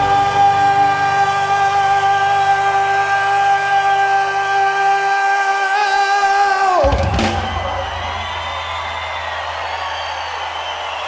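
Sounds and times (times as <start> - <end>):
crowd cheering: 0.0 - 11.0
rock band final crash: 6.8 - 9.5.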